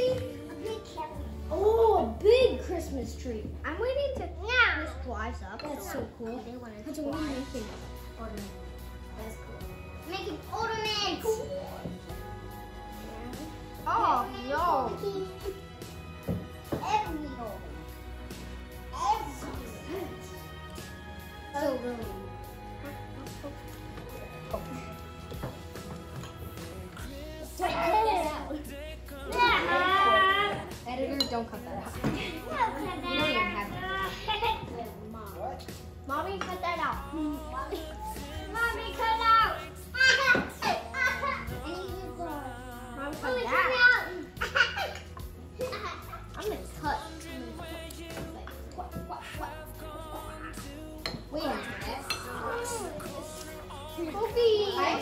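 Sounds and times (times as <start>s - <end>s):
children's voices: 0.0s - 8.6s, 9.2s - 12.2s, 12.9s - 15.7s, 16.7s - 17.9s, 18.8s - 20.6s, 26.9s - 31.3s, 32.0s - 55.0s
spoon clinking against bowl: 51.0s - 52.4s.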